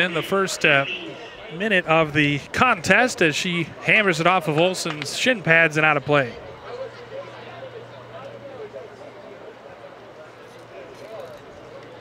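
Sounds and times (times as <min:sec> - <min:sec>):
distant people calling out: 0:00.0 - 0:10.8.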